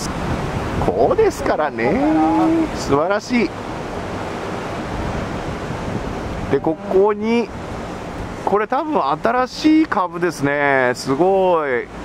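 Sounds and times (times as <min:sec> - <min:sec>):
rough sea surf: 0:00.0 - 0:12.0
wind: 0:00.0 - 0:12.0.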